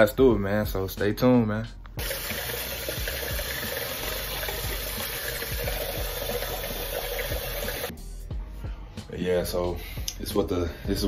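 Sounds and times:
tap water running into sink: 2.0s - 7.9s.

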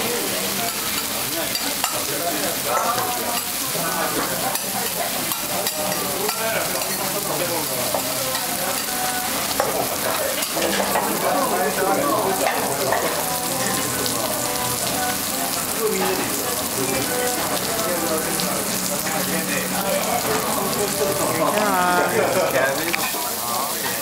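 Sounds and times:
food sizzling on a griddle: 0.0s - 24.0s
indistinct voices: 0.0s - 24.0s.

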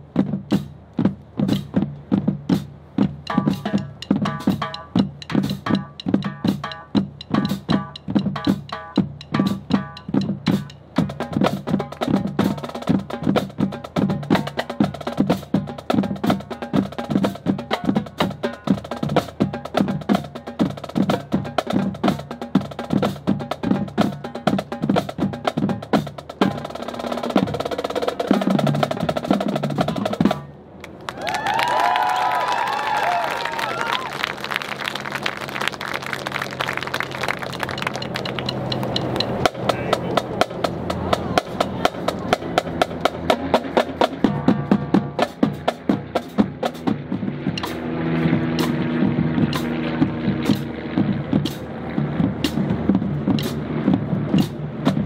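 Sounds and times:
rapid percussion strikes: 0.0s - 30.5s, 35.6s - 55.0s
marching band playing: 0.0s - 55.0s.

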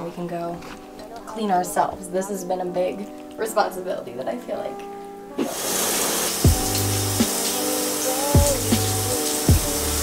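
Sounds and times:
background music with slow beat: 0.0s - 10.0s
shower water spraying on tub: 5.4s - 10.0s.

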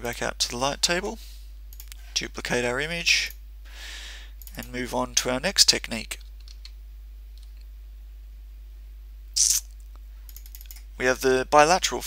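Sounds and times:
low electrical hum: 0.0s - 12.0s
keyboard and mouse clicks: 6.2s - 6.8s, 10.3s - 10.9s
short loud hiss: 9.4s - 9.7s.

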